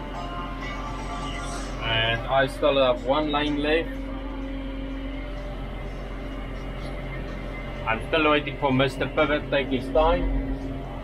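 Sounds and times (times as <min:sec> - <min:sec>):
engine drone inside cab: 0:00.0 - 0:11.0.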